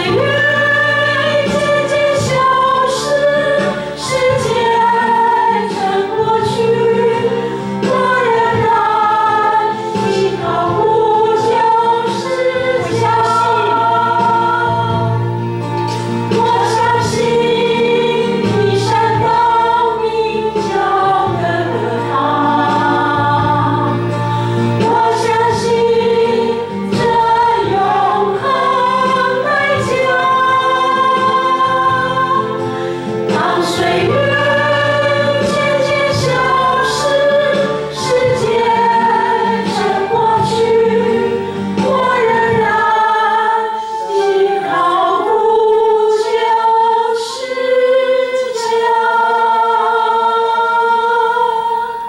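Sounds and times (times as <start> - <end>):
drum kit: 0.0 - 43.1
congregation singing: 0.0 - 52.0
keyboard: 0.0 - 52.0.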